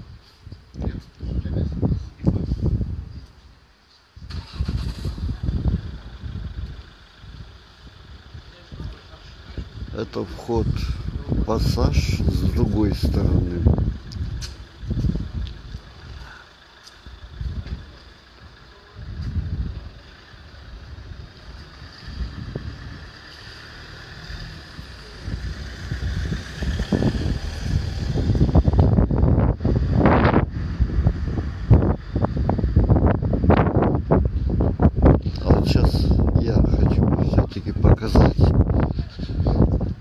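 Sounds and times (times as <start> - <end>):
wind buffeting microphone: 0.0 - 3.5, 4.2 - 16.3, 17.1 - 40.0
outdoor street ambience: 0.0 - 40.0.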